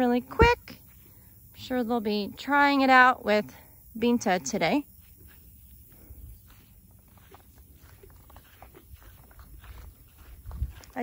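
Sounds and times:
footsteps through dry grass: 0:00.7 - 0:01.5, 0:04.8 - 0:11.0.

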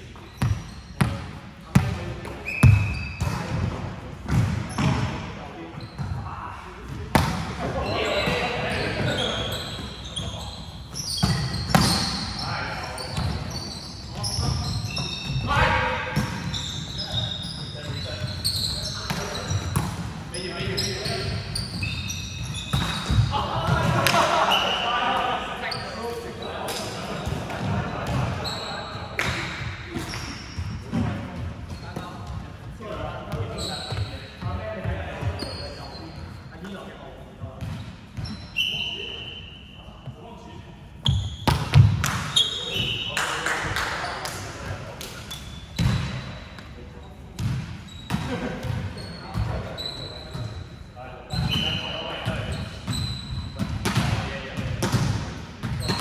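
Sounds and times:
sneakers squeaking on wooden court: 0:00.0 - 0:43.2, 0:45.1 - 0:56.0.

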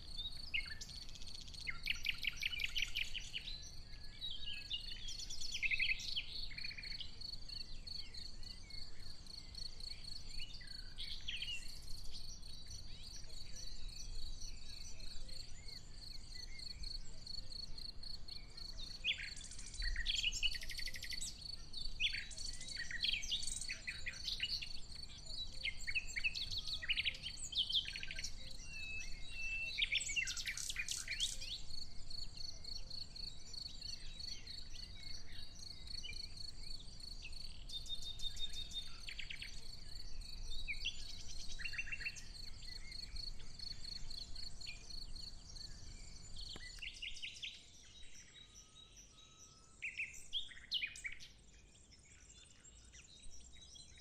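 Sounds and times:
birds singing: 0:00.0 - 0:54.0.

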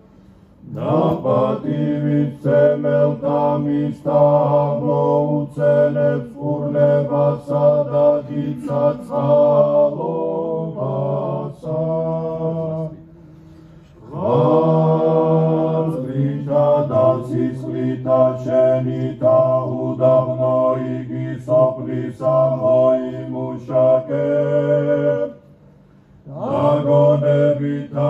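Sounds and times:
male voices chanting in harmony: 0:00.6 - 0:13.3, 0:14.0 - 0:25.4, 0:26.3 - 0:28.0.

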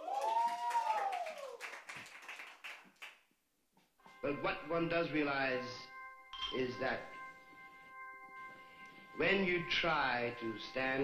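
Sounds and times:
person whooping: 0:00.0 - 0:01.6
audience clapping: 0:00.0 - 0:03.3.

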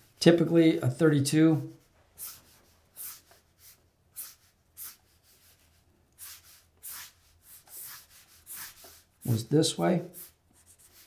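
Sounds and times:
marker swishing on paper: 0:01.6 - 0:11.0.

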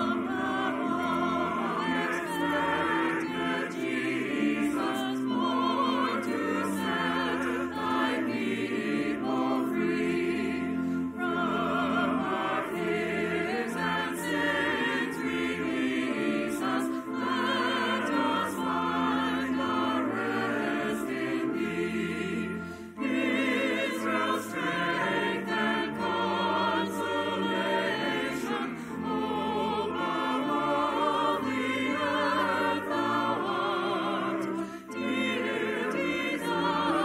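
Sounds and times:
choir singing held notes: 0:00.0 - 0:37.0
sustained accompanying notes: 0:00.0 - 0:37.0.

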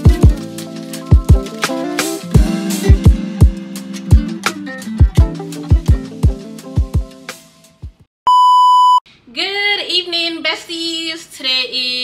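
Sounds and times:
background music: 0:00.0 - 0:08.0
steady test-tone beep: 0:08.3 - 0:09.0.

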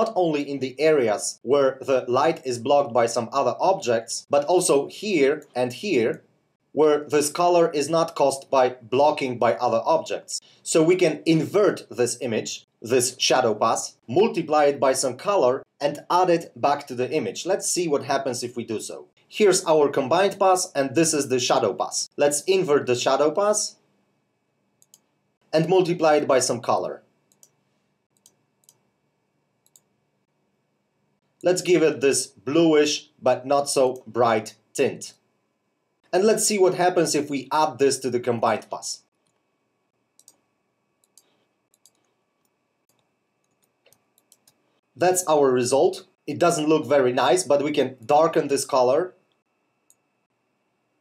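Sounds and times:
computer mouse clicks: 0:24.8 - 0:25.1, 0:27.3 - 0:28.8, 0:29.6 - 0:29.9, 0:40.2 - 0:40.4, 0:41.0 - 0:44.6.

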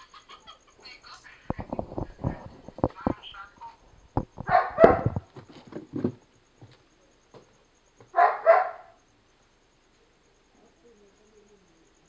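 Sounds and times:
dog barking: 0:04.4 - 0:05.3, 0:08.1 - 0:09.0.

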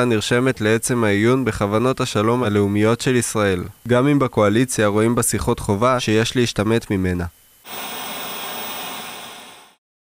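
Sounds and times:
television static hiss: 0:00.0 - 0:09.8.

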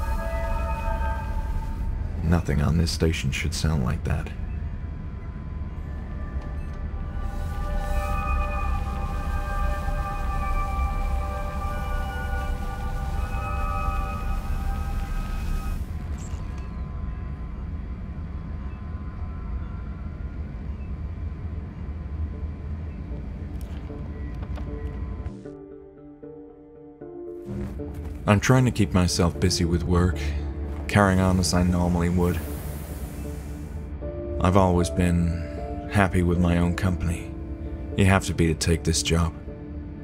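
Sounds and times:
low rumbling drone: 0:00.0 - 0:25.5, 0:27.5 - 0:38.0
eerie long held notes: 0:00.0 - 0:40.0.

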